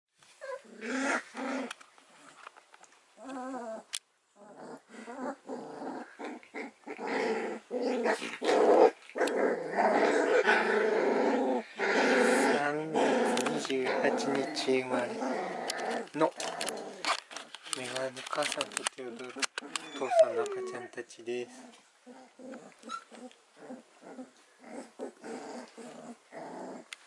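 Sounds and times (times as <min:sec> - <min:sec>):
puppies whining and growling: 0:00.4 - 0:02.4, 0:03.2 - 0:17.6, 0:19.2 - 0:26.9.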